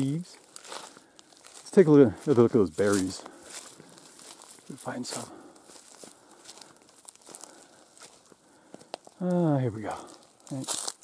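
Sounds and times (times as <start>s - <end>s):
leaves and twigs rustling: 0.0s - 11.0s.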